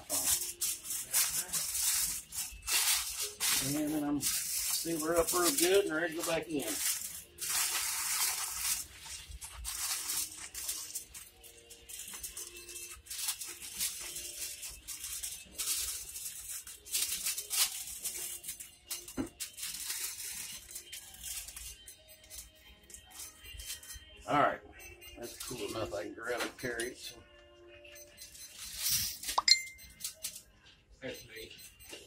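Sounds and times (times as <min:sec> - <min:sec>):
aluminium foil crinkling: 0:00.0 - 0:23.9, 0:28.6 - 0:29.4
faint background music: 0:00.0 - 0:32.0.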